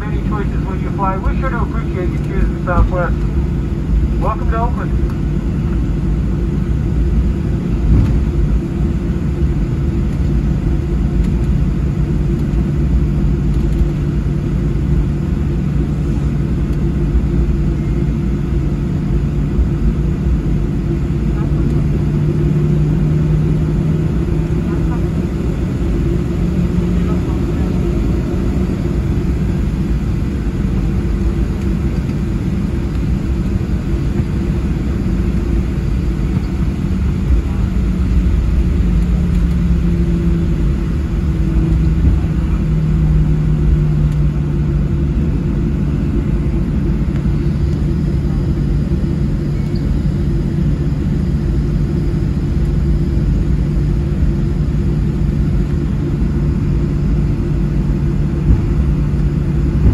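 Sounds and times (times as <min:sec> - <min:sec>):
airplane engines taxiing in cabin: 0:00.0 - 0:59.9.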